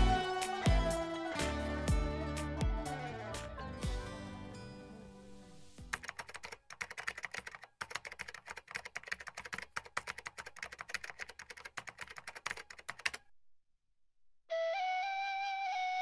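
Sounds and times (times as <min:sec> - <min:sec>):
music: 0:00.0 - 0:05.9, 0:14.5 - 0:16.0
computer keyboard typing: 0:05.9 - 0:13.3.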